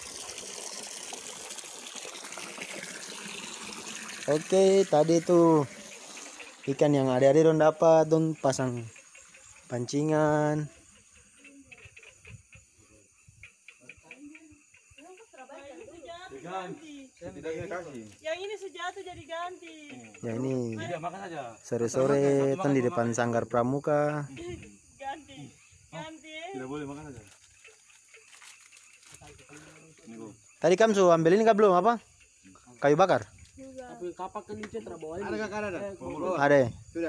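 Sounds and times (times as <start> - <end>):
faint high hiss: 0.0 - 10.7.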